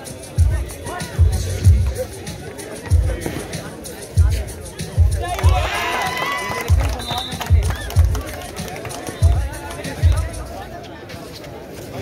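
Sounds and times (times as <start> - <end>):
bass-heavy music over loudspeakers: 0.0 - 10.7
voices: 0.0 - 12.0.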